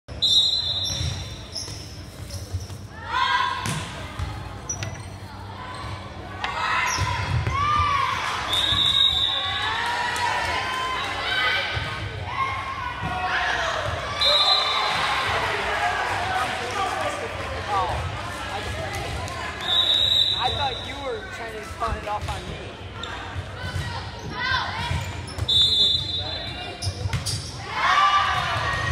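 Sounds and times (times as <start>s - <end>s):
referee's whistle blasts: 0.1s - 1.4s, 8.5s - 9.4s, 14.1s - 15.0s, 19.6s - 21.1s, 25.4s - 26.7s
people shouting and cheering: 27.6s - 28.9s.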